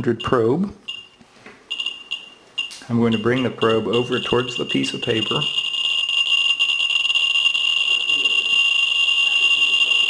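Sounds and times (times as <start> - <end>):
geiger counter clicks and squeal: 0.0 - 10.0.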